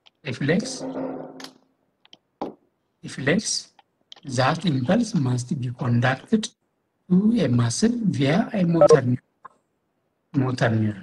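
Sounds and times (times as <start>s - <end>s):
person speaking: 8.6s - 9.2s.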